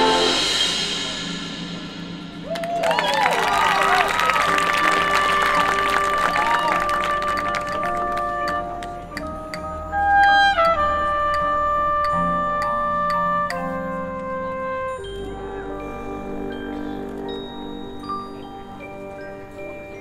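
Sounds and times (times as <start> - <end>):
marching band playing: 0.0 - 19.1
brass holding long notes: 0.0 - 20.0.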